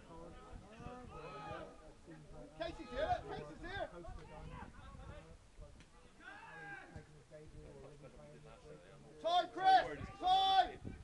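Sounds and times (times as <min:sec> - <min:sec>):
footballers shouting: 0:00.9 - 0:01.8, 0:02.5 - 0:04.8, 0:06.1 - 0:07.1, 0:09.2 - 0:10.8.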